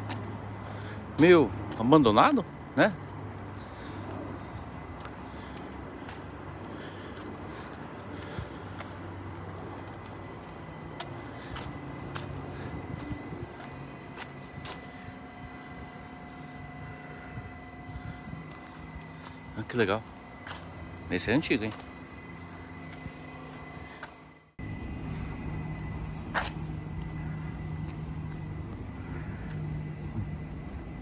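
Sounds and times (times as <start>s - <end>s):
distant traffic hum: 0.0s - 31.0s.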